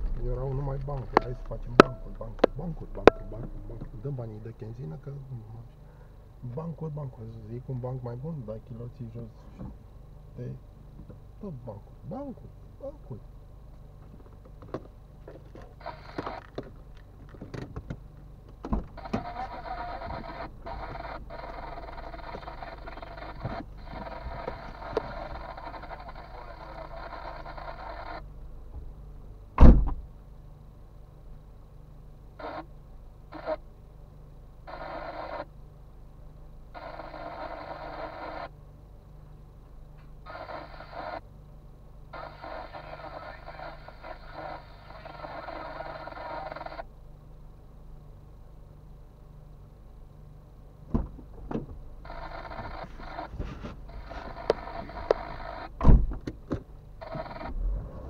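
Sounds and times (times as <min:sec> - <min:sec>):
car engine idling: 0:00.0 - 0:29.4
car door shutting: 0:29.6 - 0:30.0, 0:50.9 - 0:51.8, 0:55.8 - 0:58.0.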